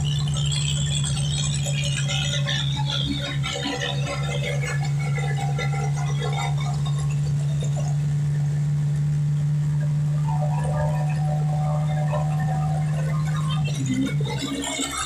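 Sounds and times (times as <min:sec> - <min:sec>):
long held low note: 0:09.6 - 0:14.3.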